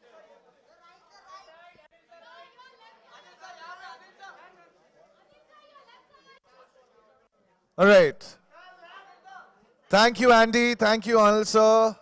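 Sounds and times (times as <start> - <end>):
faint voices chattering: 0.0 - 7.8.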